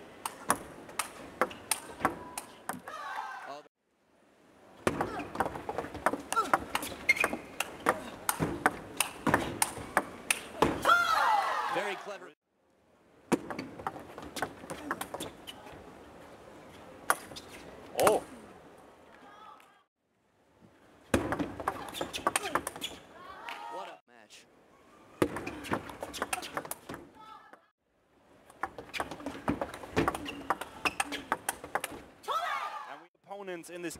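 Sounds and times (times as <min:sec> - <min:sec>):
people shouting: 0:02.2 - 0:03.6, 0:10.6 - 0:12.2, 0:32.2 - 0:33.1.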